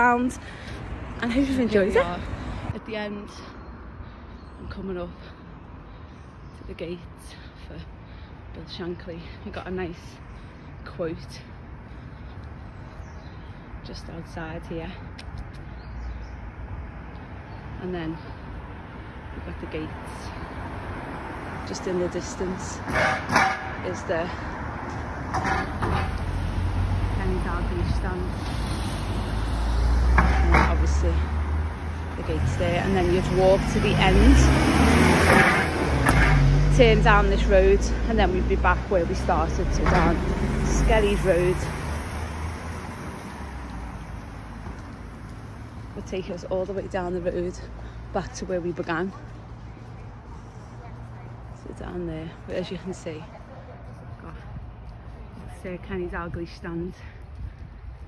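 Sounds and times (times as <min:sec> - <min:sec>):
low street rumble: 0:00.0 - 0:58.0
car driving away: 0:25.6 - 0:45.7.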